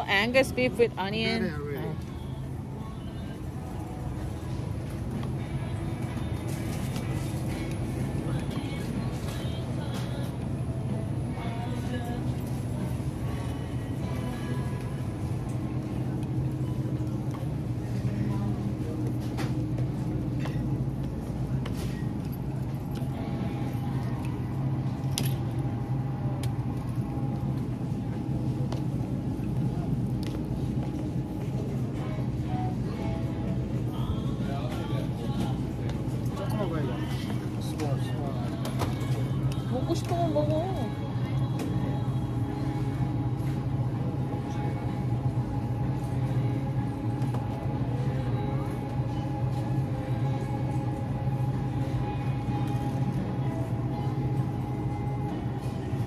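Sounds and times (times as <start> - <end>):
faint background music: 0.0 - 56.0
steady low hum: 0.0 - 56.0
voices: 31.4 - 45.0.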